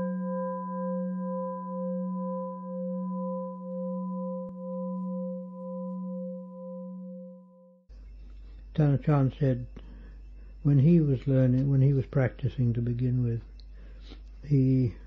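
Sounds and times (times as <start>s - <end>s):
singing bowl ringing: 0.0s - 8.1s.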